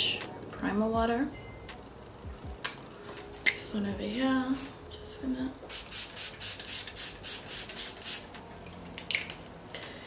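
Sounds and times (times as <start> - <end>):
spray bottle hissing bursts: 5.7 - 8.3.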